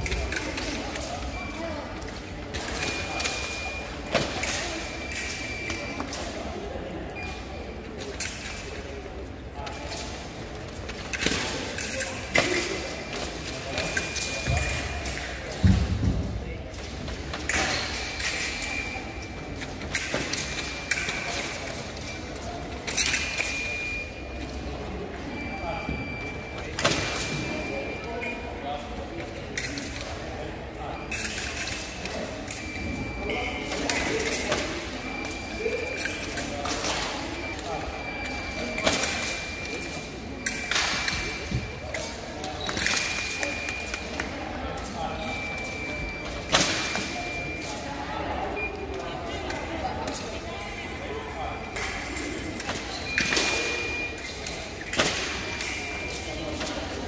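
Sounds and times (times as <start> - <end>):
voices in echoing hall: 0.0 - 57.0.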